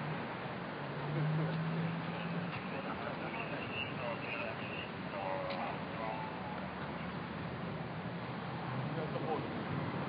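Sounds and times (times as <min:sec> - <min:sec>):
steady background noise: 0:00.0 - 0:10.0
faint distant voices: 0:01.0 - 0:09.8.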